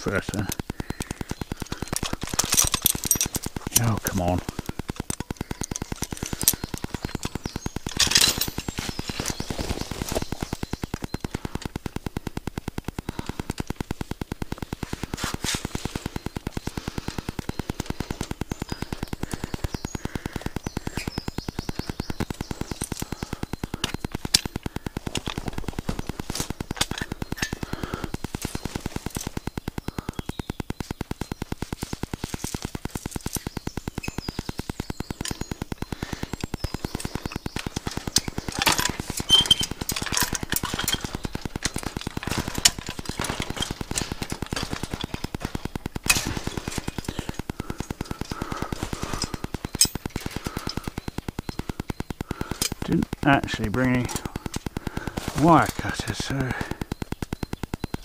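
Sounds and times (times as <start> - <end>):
fast mechanical pulsing: 0.0 - 58.0
chain and wire clinking: 1.6 - 4.2, 7.9 - 9.2.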